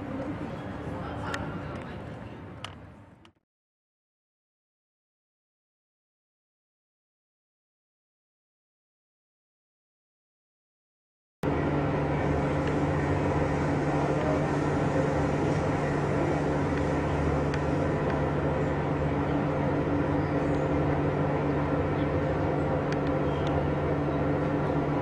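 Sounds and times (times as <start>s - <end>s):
mechanical drone: 11.4s - 25.0s.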